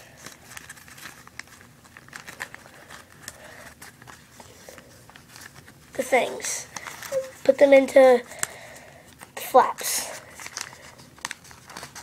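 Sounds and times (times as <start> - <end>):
paper crinkling faintly: 0.0 - 12.0.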